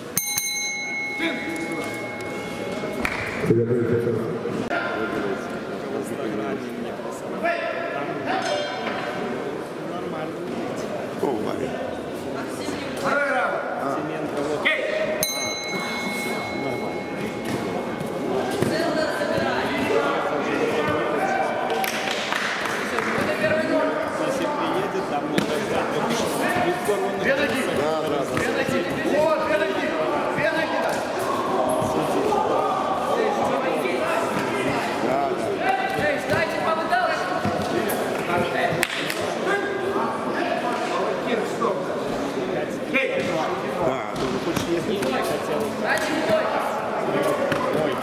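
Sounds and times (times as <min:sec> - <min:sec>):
crowd shouting in sports hall: 0:14.6 - 0:42.1
onlookers shouting in echoing hall: 0:18.6 - 0:23.8, 0:29.1 - 0:37.3.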